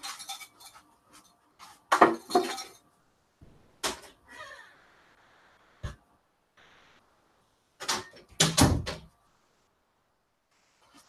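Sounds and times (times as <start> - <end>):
faint hiss: 3.2 - 7.8.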